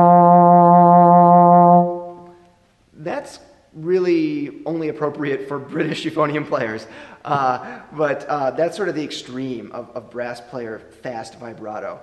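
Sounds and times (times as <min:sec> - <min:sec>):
trombone long note with vibrato: 0:00.0 - 0:02.3.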